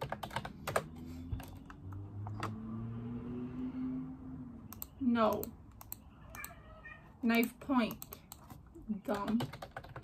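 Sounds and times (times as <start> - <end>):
typing on computer keyboard: 0.0 - 1.8, 7.3 - 10.0.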